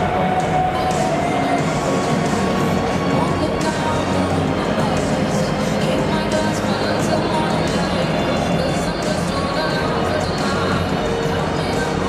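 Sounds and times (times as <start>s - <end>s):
music over public address: 0.0s - 12.0s.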